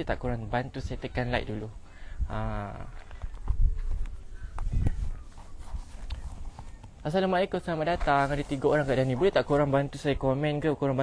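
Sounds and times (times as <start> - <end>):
wind noise on microphone: 0.0 - 7.0.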